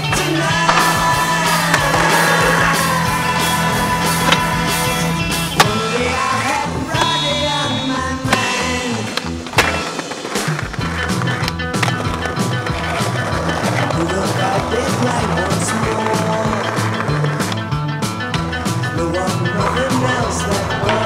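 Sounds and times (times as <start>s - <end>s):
music soundtrack: 0.0s - 21.0s
skateboard clacking: 0.0s - 21.0s
skateboard rolling on concrete: 0.0s - 21.0s.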